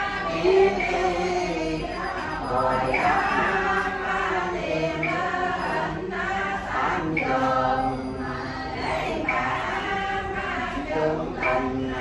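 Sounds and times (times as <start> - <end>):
men chanting a prayer: 0.0 - 12.0.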